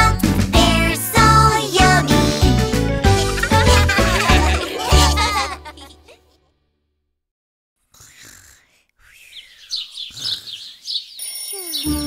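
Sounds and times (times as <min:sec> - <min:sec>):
music: 0:00.0 - 0:06.4
cartoon birds chirping: 0:08.0 - 0:12.0.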